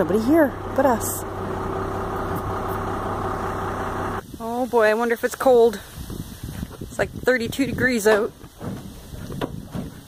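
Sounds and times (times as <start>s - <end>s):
motor idling hum: 0.0s - 4.6s.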